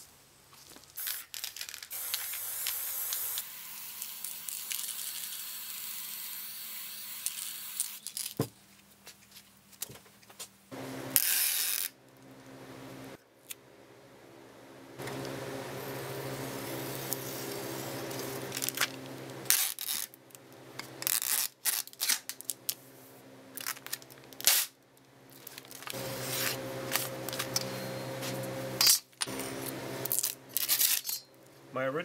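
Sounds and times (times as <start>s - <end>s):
packing tape pulled off roll: 0.6s - 8.5s, 11.2s - 12.0s, 16.9s - 22.8s, 23.6s - 27.7s, 28.4s - 31.1s
tape cut on dispenser blade: 1.0s - 8.4s, 11.2s - 12.0s, 17.0s - 20.2s, 21.0s - 22.5s, 23.6s - 24.8s, 30.0s - 31.0s.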